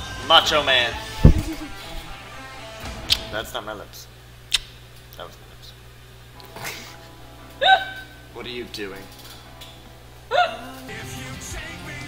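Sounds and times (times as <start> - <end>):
faint music: 0.0 - 4.3, 5.0 - 12.0
woman's laughing squeal: 7.6 - 8.2, 10.3 - 10.7.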